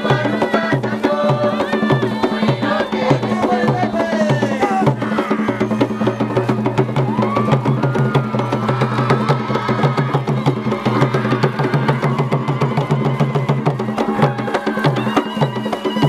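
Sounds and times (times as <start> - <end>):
traditional drum music: 0.0 - 16.0.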